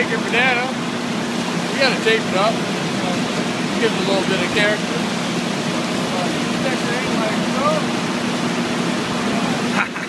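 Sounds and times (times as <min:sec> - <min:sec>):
drilling rig rushing noise: 0:00.0 - 0:10.0.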